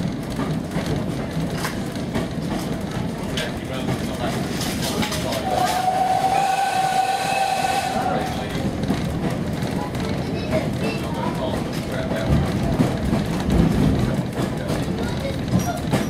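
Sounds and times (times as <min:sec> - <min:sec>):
train carriage rumble: 0:00.0 - 0:16.0
wheels clicking over rail joints: 0:00.0 - 0:16.0
steam whistle blast: 0:05.5 - 0:08.4.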